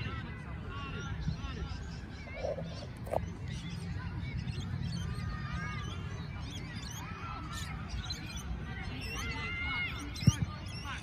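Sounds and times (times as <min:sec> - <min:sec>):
birds chirping: 0:00.0 - 0:11.0
wind rumble on microphone: 0:08.4 - 0:11.0.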